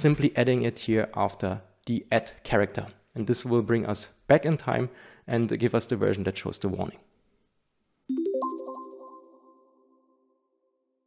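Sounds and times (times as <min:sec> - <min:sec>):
electronic chime: 0:08.1 - 0:09.8.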